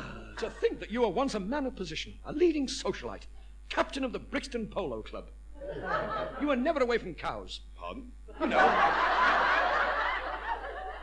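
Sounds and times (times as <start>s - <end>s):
audience laughing: 5.6s - 6.5s, 8.4s - 11.0s.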